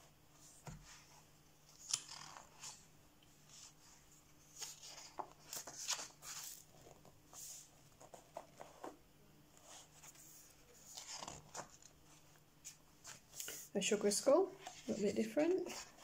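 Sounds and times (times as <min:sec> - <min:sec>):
paper pages rustling: 0:03.5 - 0:09.0, 0:09.6 - 0:13.7.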